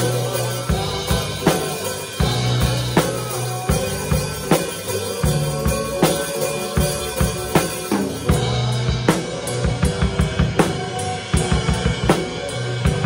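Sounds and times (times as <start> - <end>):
drum kit groove: 0.0 - 13.0
sustained low bass notes: 0.0 - 13.0.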